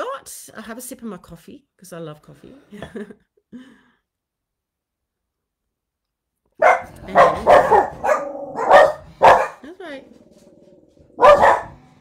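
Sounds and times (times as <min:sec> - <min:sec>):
dog barking: 0:06.6 - 0:09.7, 0:11.1 - 0:11.8.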